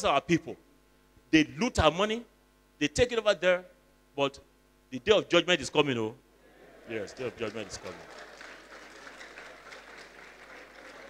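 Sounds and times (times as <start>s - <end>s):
audience applauding: 6.6s - 11.0s.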